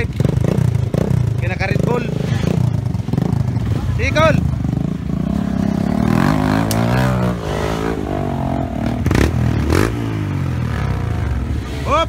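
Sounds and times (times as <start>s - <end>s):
dirt bike engine puttering: 0.0s - 11.4s.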